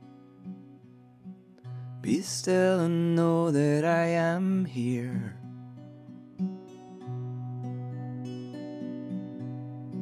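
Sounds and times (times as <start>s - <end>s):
acoustic guitar strummed gently: 0.0s - 10.0s.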